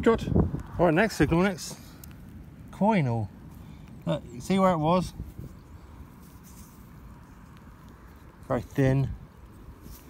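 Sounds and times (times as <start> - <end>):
low outdoor rumble: 0.0 - 10.0
soil and straw rustling: 0.4 - 10.0
soft ticks: 2.0 - 2.4.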